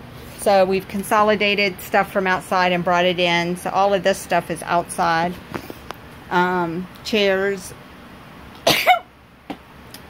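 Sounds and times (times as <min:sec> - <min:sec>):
person coughing: 0:08.6 - 0:09.1.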